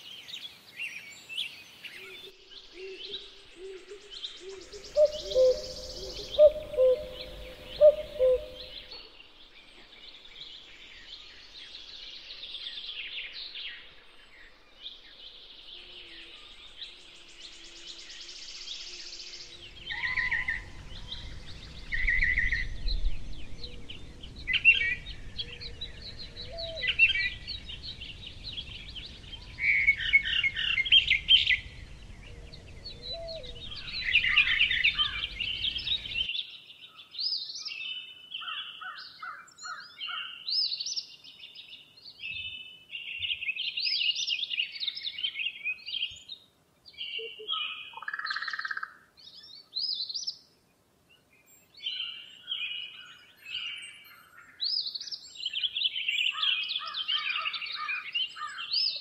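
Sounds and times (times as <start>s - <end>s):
low background noise: 0.0s - 38.5s
songbirds chirping and trilling: 0.0s - 59.0s.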